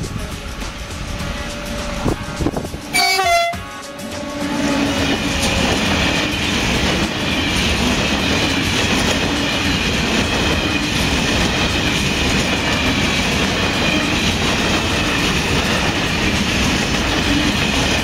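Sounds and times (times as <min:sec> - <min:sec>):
freight train rumbling past: 0:00.0 - 0:18.0.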